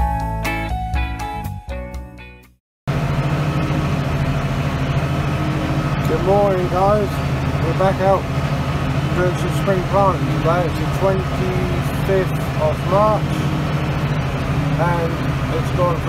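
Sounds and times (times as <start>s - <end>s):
intro music: 0.0s - 2.5s
tractor engine drone: 2.9s - 16.0s
man speaking: 6.0s - 8.3s, 9.1s - 13.5s, 14.7s - 16.0s.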